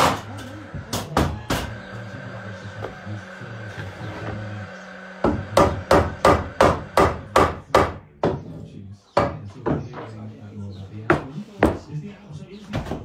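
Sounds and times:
hammer striking nails into wood: 5.2s - 8.4s.

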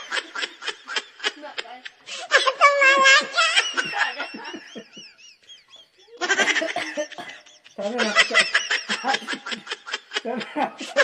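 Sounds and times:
high-pitched giggling: 0.0s - 11.0s
people laughing: 0.0s - 11.0s.

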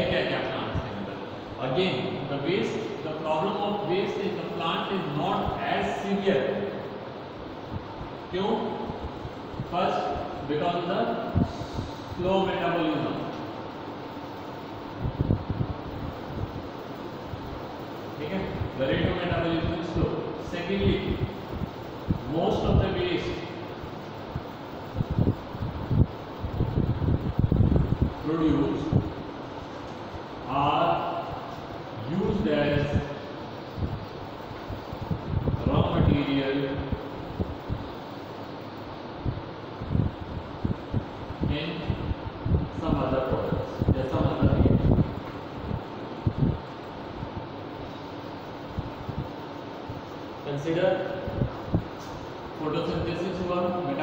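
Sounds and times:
room hum: 0.0s - 54.0s.

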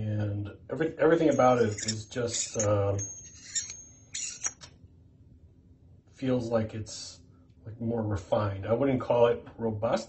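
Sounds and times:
metal rod rubbing and sliding: 1.2s - 4.7s.

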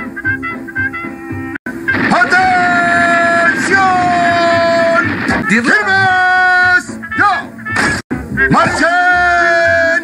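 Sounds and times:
man bellowing a command: 2.0s - 7.6s, 8.5s - 10.0s.

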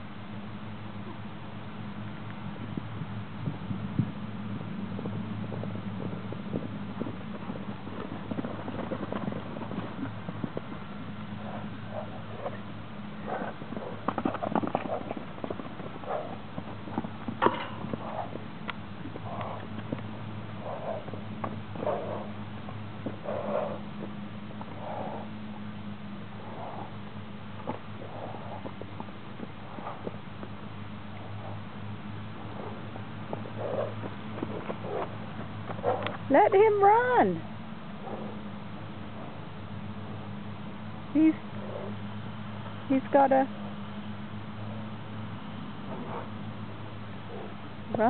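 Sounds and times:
steady low hum: 0.0s - 48.0s
horse hooves cantering: 1.0s - 48.0s.

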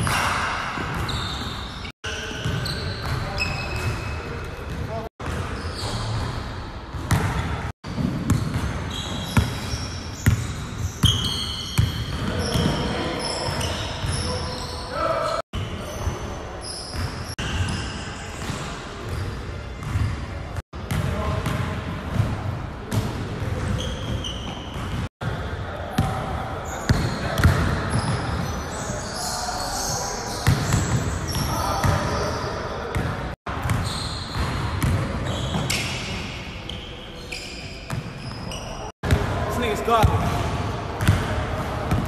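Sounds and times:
sneakers squeaking: 0.0s - 22.3s, 22.9s - 42.0s.

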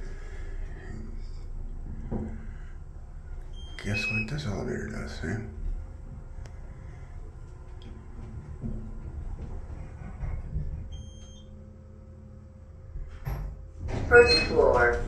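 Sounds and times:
elevator humming in motion: 0.0s - 15.0s
elevator doors sliding open: 13.8s - 15.0s.

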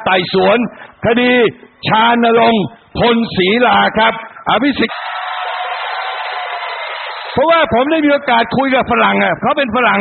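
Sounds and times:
crowd cheering and clapping: 4.9s - 7.6s.

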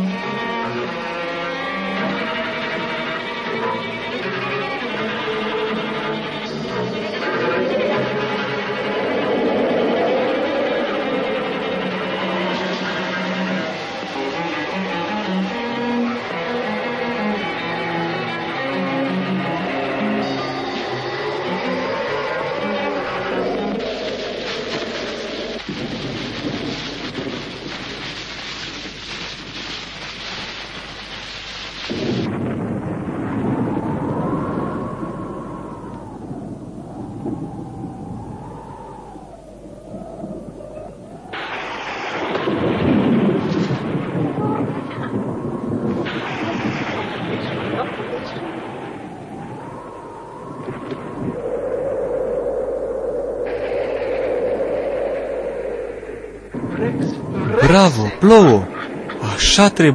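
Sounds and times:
rolling thunder: 0.0s - 59.5s
rain-like hiss: 0.0s - 59.9s.

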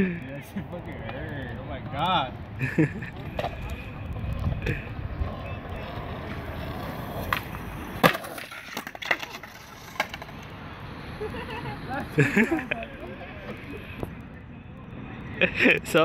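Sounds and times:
skateboard wheels rolling on concrete: 0.0s - 16.0s
skateboard pop: 5.9s - 10.5s
skateboard landing smack: 7.2s - 9.2s.

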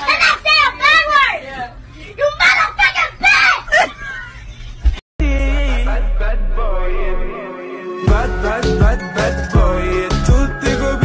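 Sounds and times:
young girl shouting: 2.2s - 3.9s.

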